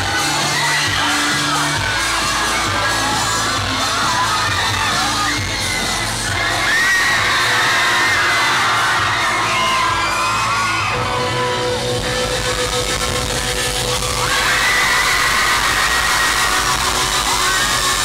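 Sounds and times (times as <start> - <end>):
crowd screaming and cheering: 0.0 - 18.0
live band amplified instruments: 0.0 - 18.0.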